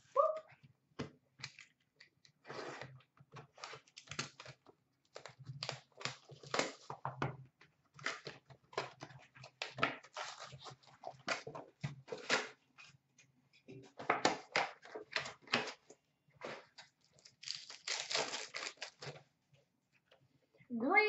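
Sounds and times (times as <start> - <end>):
card wrappers crinkling and tearing: 3.5 - 7.0, 10.1 - 11.5, 16.5 - 19.2.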